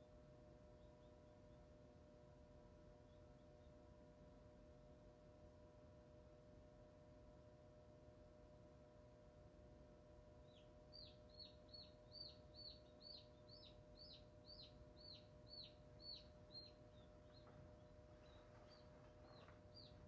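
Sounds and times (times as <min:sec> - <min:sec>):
incubator fan humming: 0:10.5 - 0:20.0
chick peeping: 0:11.0 - 0:20.0.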